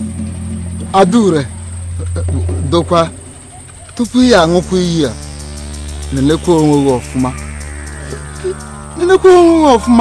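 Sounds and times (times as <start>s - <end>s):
crickets chirping: 0.0s - 10.0s
high-pitched insect trill: 0.0s - 10.0s
low hum: 0.0s - 10.0s.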